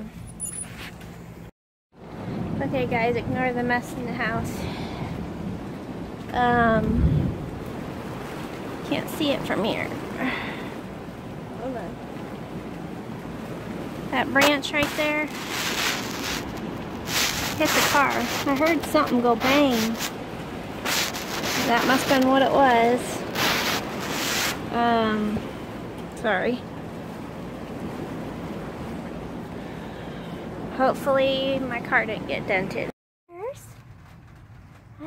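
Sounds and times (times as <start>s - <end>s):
storm wind and heavy rain: 2.0s - 35.0s.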